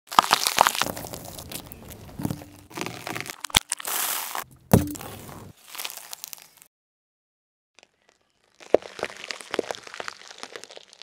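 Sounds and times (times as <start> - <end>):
car tyre crushing peppers: 0.1 - 6.4.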